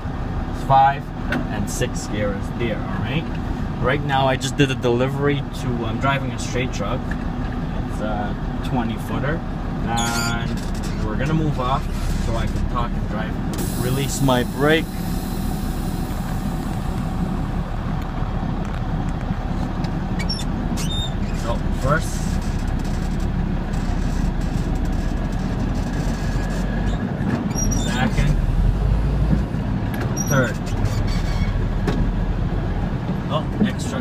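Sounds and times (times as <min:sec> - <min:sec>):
truck engine rumbling: 0:00.0 - 0:34.0.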